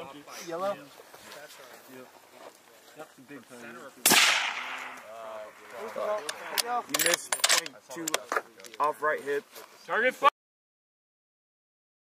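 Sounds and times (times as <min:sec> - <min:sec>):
rifle shot with echo: 0:04.0 - 0:05.1
rifle bolt metallic clicks: 0:06.5 - 0:08.8.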